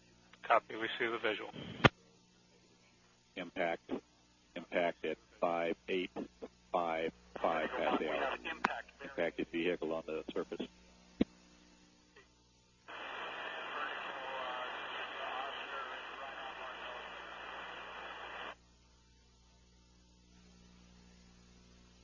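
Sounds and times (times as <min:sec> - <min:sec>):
open-channel radio hiss: 0:00.4 - 0:02.0, 0:03.3 - 0:11.9, 0:12.8 - 0:18.6
voice over radio: 0:04.6 - 0:10.7, 0:12.9 - 0:18.4
radio click: 0:07.3 - 0:08.8, 0:12.9 - 0:18.6
faint voice: 0:12.9 - 0:18.4.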